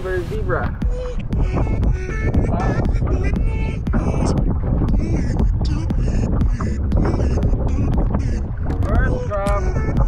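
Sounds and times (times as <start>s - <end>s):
choppy sea: 0.0s - 10.0s
wind rumbling on microphone: 0.0s - 10.0s
background music with steady beat: 0.4s - 10.0s.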